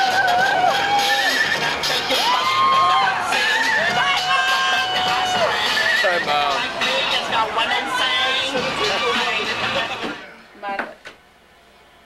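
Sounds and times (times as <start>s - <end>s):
crowd cheering and shouting: 0.0s - 10.2s.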